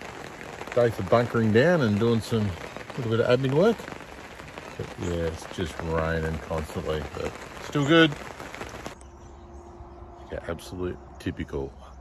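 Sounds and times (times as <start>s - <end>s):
rain on an awning: 0.0s - 9.0s.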